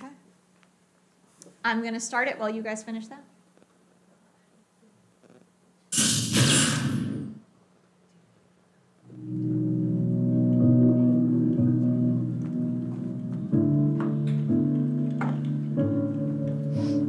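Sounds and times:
short burst of noise: 5.9s - 7.4s
ambient instrumental music: 9.1s - 17.0s.

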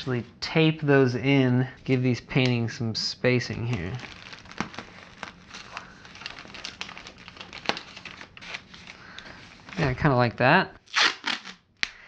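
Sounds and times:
plastic air pillows crinkling: 3.4s - 10.2s.

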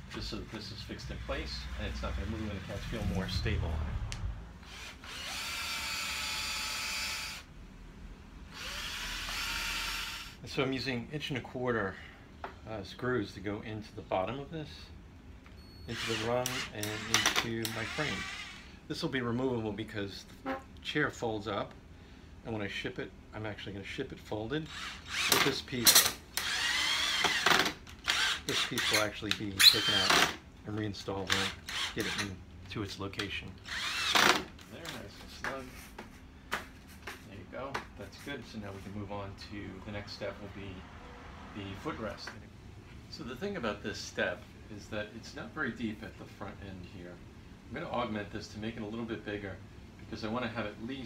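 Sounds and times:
power drill driving screws: 4.6s - 7.5s, 8.5s - 10.4s, 15.9s - 18.7s, 24.7s - 30.4s, 31.3s - 32.3s, 33.6s - 34.5s.

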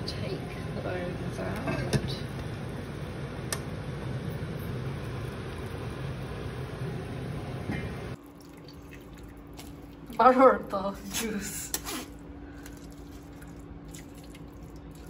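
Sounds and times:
steady hum: 0.0s - 15.0s
broth dripping into pot: 1.4s - 10.2s, 12.5s - 15.0s.

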